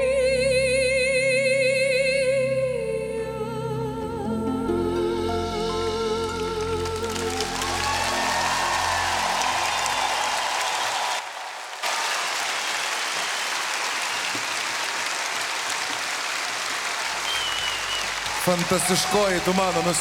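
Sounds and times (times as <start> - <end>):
audience applauding: 6.3 - 20.0.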